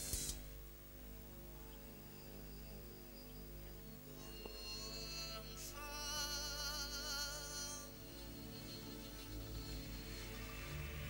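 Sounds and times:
steady low hum: 0.0 - 11.0
sustained instrumental notes: 4.1 - 11.0
man singing with wide vibrato: 4.2 - 10.7.

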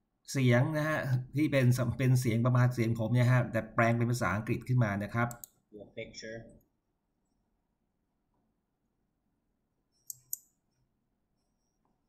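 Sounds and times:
sharp clicks: 5.3 - 5.6.

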